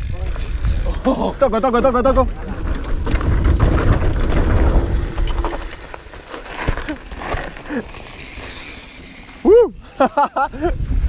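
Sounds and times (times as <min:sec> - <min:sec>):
wind buffeting microphone: 0:00.0 - 0:05.8, 0:10.5 - 0:11.0
bike frame and tyre rattle: 0:00.0 - 0:11.0.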